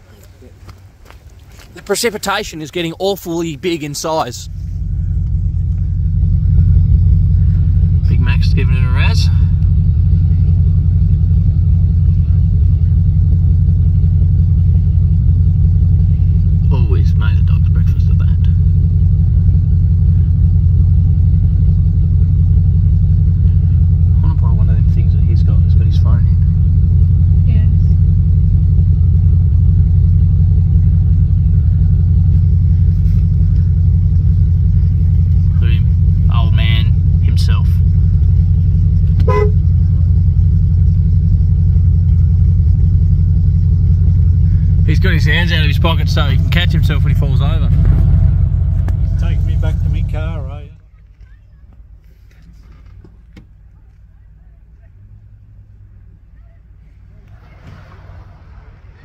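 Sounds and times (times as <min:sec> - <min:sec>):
car engine idling: 0:00.0 - 0:59.0
faint voices: 0:49.1 - 0:59.0.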